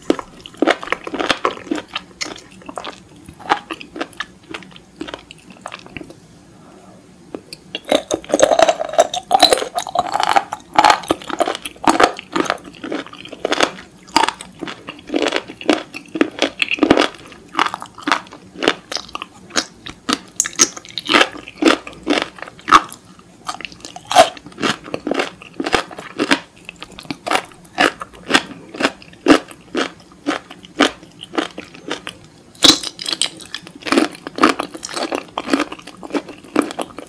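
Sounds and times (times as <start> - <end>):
wet crunchy chewing: 7.4 - 37.0.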